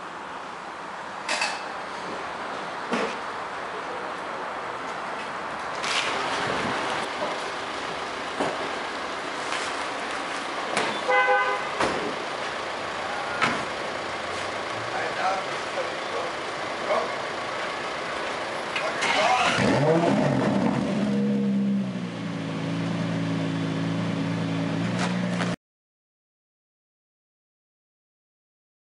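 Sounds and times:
car engine starting and idling: 0:05.8 - 0:25.5
short horn toot: 0:11.0 - 0:11.7.

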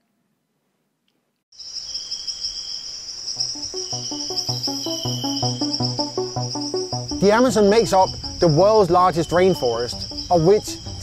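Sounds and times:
chorus of insects: 0:01.6 - 0:11.0
music with low pulsing notes: 0:03.5 - 0:11.0.

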